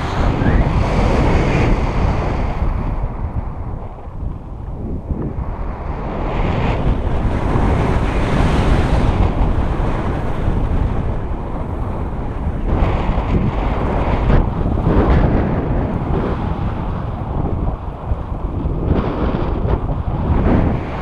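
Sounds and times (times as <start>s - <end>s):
wind roaring over microphone: 0.0s - 21.0s.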